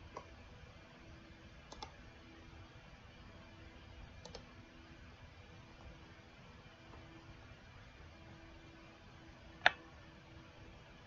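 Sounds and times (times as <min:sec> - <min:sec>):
quiet room hum: 0:00.0 - 0:11.0
computer mouse clicks: 0:00.1 - 0:00.3, 0:01.7 - 0:02.0, 0:04.2 - 0:04.5, 0:09.6 - 0:09.8.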